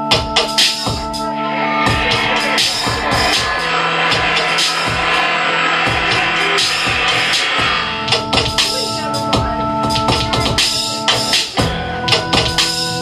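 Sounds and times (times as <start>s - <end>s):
harsh noise: 0.2s - 13.0s
electronic drones: 0.9s - 13.0s
drum hits: 1.7s - 8.8s.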